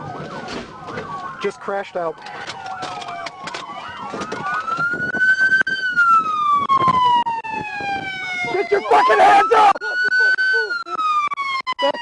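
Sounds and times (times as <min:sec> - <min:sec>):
police siren wailing: 0:00.0 - 0:12.0
sharp clicks and knocks: 0:02.2 - 0:04.9.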